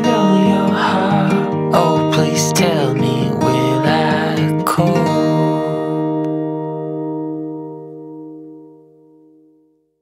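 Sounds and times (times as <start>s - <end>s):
acoustic guitar chord: 0.0s - 9.8s.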